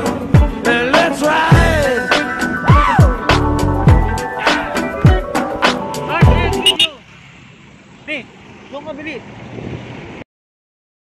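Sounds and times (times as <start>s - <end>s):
background music: 0.0s - 6.8s
steady outdoor background hiss: 0.0s - 10.2s.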